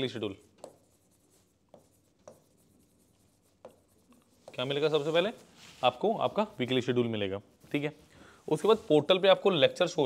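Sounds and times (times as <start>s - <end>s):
pen strokes on writing board: 0.0s - 9.2s
pen tapping on board: 0.6s - 0.9s, 1.7s - 2.6s, 3.5s - 4.6s.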